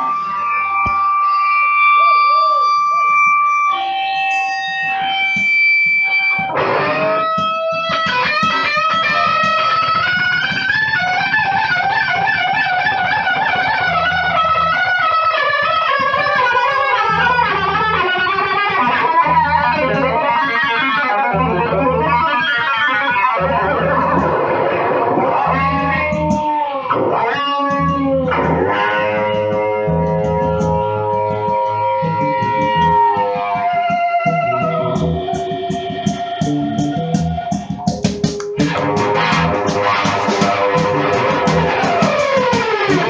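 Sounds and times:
bass guitar: 0.0 - 43.0
distorted electric guitar: 0.0 - 43.0.

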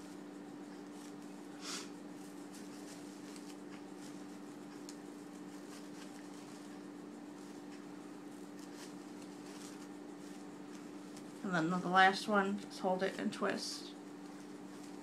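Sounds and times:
ribbon rustling and crinkling: 0.0 - 15.0
steady low hum: 0.0 - 15.0.

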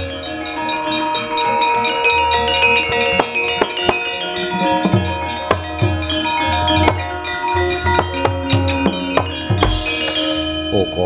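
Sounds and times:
gamelan metallophones and gongs: 0.0 - 11.0
sharp knocks: 7.9 - 10.3.

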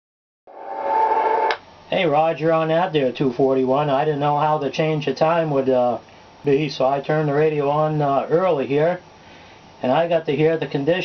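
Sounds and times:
man speaking: 1.9 - 9.0, 9.8 - 11.0.

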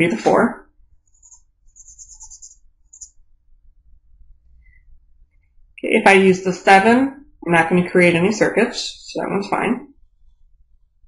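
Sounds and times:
marker scratching on paper: 1.0 - 3.2.

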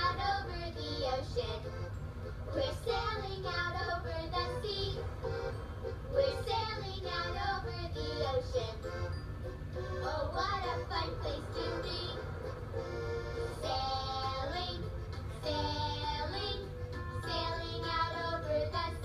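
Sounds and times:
children singing together: 0.0 - 1.6, 6.2 - 8.8, 13.6 - 19.0
instrumental backing: 4.4 - 19.0.

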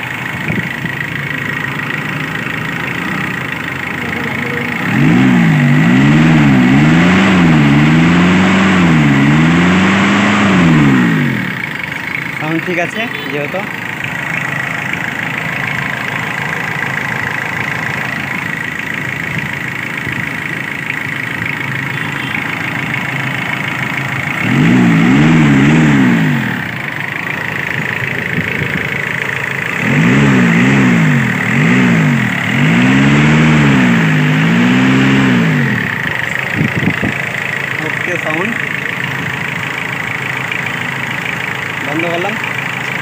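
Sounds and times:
diesel engine idling and revving: 0.0 - 43.0.

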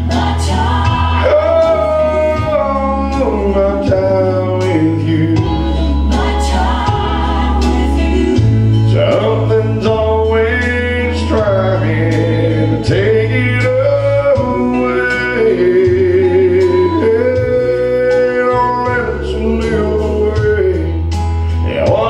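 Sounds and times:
instrumental accompaniment: 0.0 - 22.0
man singing gospel song: 0.0 - 22.0.

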